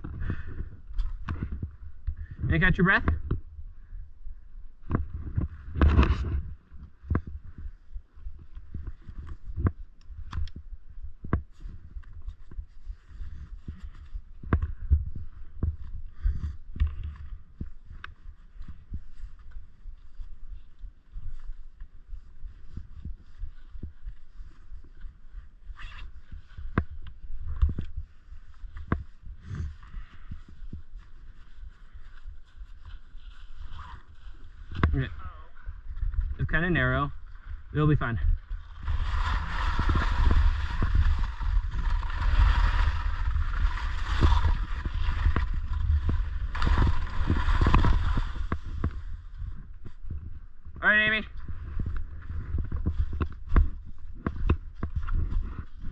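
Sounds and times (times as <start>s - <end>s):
skis scraping over snow: 37.8s - 50.1s.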